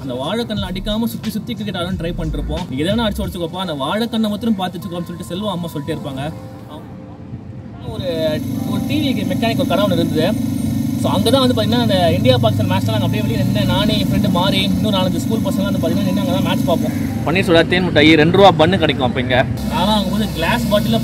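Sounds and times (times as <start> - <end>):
man talking: 0.0 - 6.9, 7.8 - 10.4, 11.0 - 21.0
road traffic rumble: 0.0 - 21.0.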